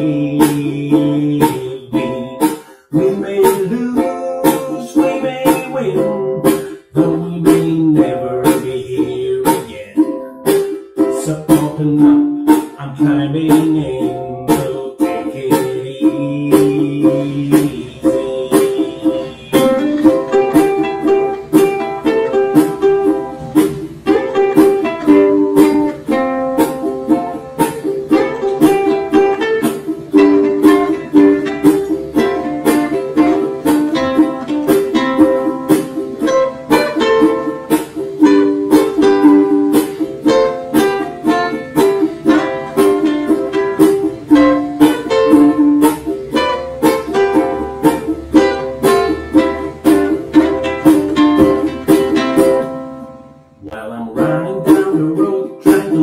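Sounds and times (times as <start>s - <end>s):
picked ukulele melody: 0.0s - 56.0s
ukuleles strumming chords: 0.0s - 56.0s.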